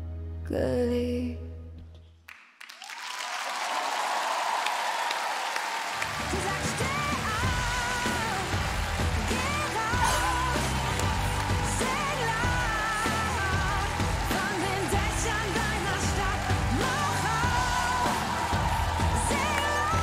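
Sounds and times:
music: 0.0 - 2.3, 5.8 - 20.0
audience applauding and cheering: 2.3 - 20.0.

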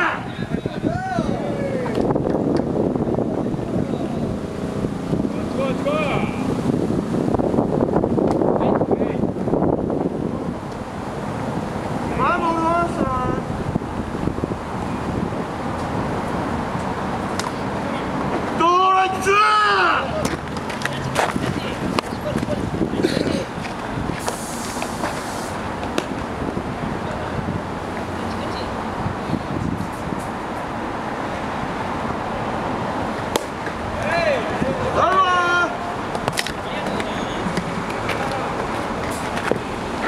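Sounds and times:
wind buffeting microphone: 0.0 - 18.6, 20.1 - 40.0
steady background hiss: 23.8 - 29.2
sharp crack of baseball: 33.3 - 33.8.

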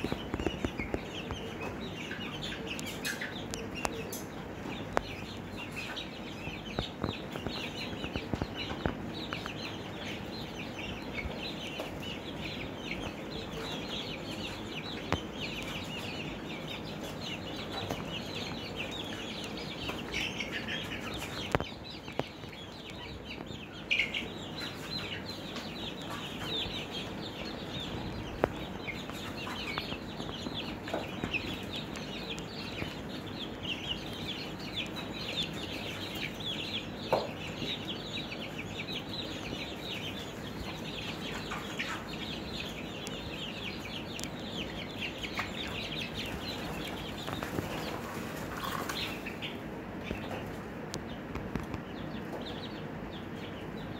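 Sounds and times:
chicks cheeping: 0.0 - 53.9
steady low hum: 0.0 - 53.9.

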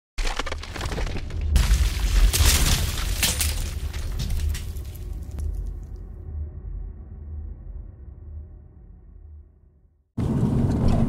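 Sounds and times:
stone breaking and shattering: 0.2 - 5.8
deep rumble: 1.2 - 11.0.

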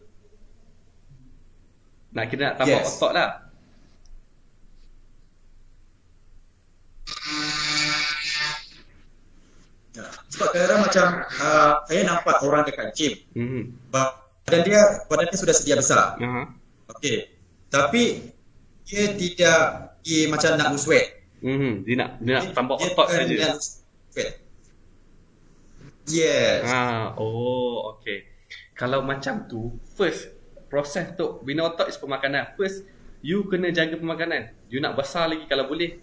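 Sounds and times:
low room tone: 0.0 - 36.0
man's long uhh over video call: 9.9 - 15.1, 16.0 - 24.4, 26.0 - 28.8.

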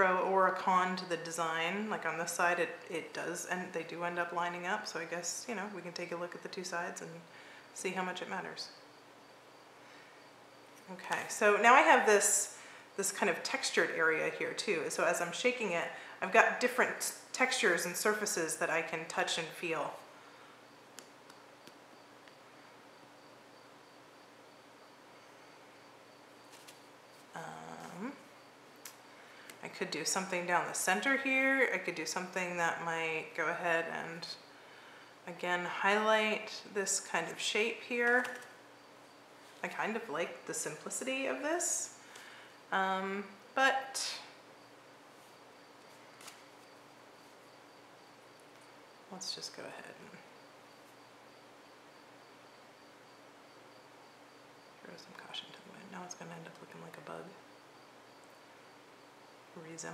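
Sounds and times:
low steady hiss: 0.0 - 59.9.

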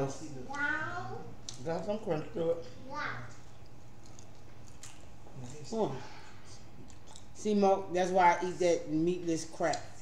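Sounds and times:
person chewing and crunching: 4.0 - 5.7, 6.8 - 7.4.

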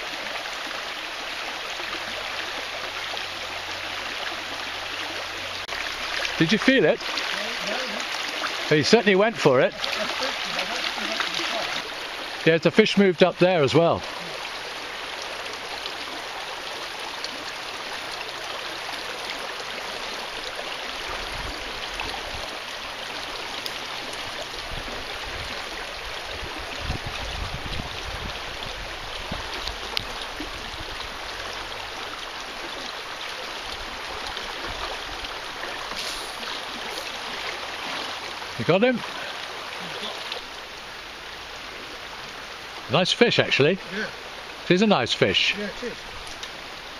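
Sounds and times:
river water rushing over stones: 0.0 - 46.9.

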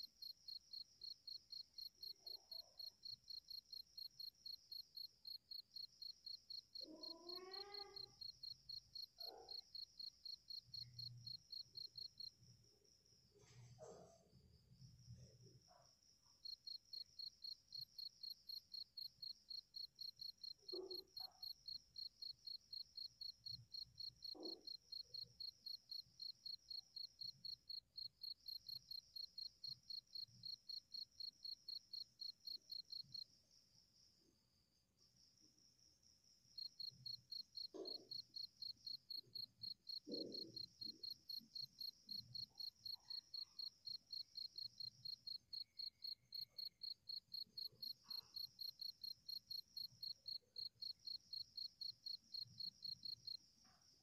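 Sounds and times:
cricket chirping: 0.0 - 54.0.

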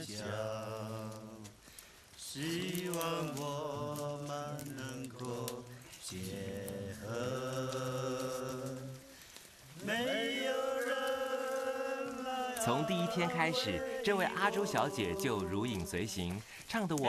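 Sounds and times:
man singing unaccompanied: 0.0 - 1.6, 2.2 - 9.1, 9.8 - 17.0.

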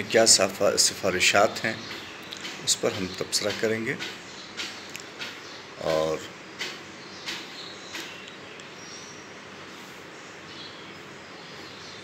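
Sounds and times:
man speaking: 0.0 - 1.9, 2.6 - 4.1, 5.8 - 6.3.

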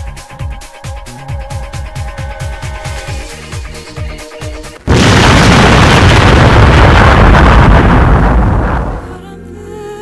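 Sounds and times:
loud explosion blast: 4.8 - 9.0.

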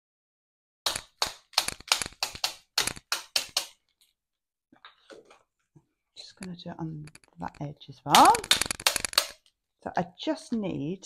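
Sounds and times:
paint pen tapping against ruler: 0.9 - 3.8.

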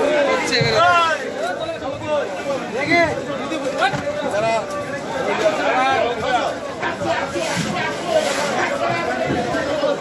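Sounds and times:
crowd of people talking: 0.0 - 10.0.

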